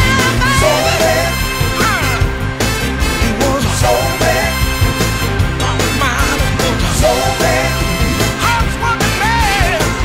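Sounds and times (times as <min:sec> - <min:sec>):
person singing: 0:00.0 - 0:02.2
soul song by full band: 0:00.0 - 0:10.0.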